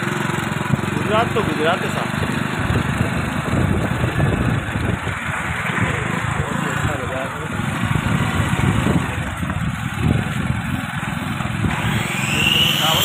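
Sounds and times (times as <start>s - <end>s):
motorcycle engine running: 0.0s - 13.0s
high rising tone: 11.6s - 13.0s.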